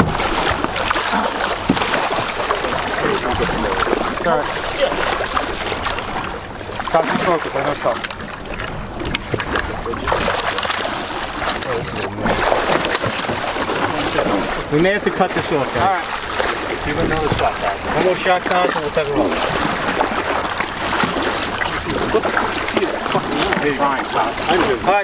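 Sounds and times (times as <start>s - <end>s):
shark thrashing against boat: 0.0s - 25.0s
water splashing and churning: 0.0s - 25.0s
wind on microphone: 15.7s - 18.2s.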